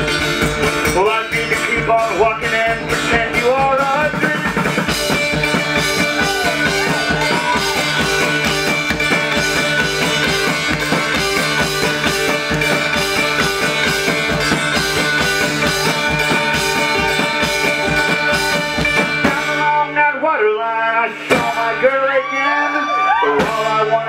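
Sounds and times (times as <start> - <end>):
steady drum beat: 0.0 - 20.0, 21.1 - 22.0
banjo playing: 0.0 - 22.0.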